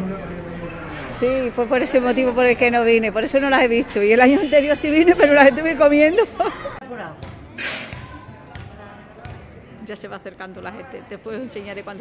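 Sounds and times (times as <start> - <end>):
woman speaking: 1.2 - 6.5.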